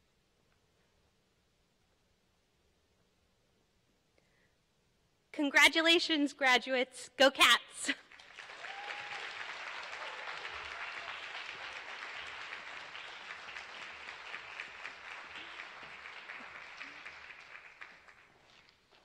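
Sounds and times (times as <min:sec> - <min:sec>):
audience applauding: 0:08.0 - 0:19.0.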